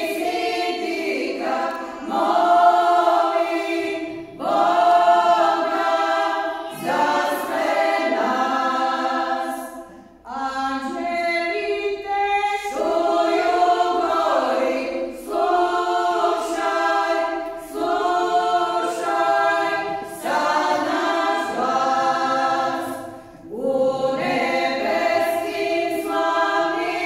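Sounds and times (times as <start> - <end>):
women's choir singing a cappella: 0.0 - 27.0.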